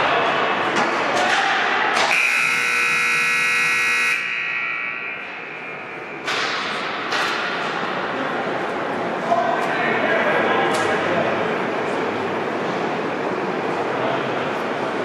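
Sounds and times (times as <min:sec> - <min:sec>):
loud rink buzzer: 0:02.0 - 0:06.2.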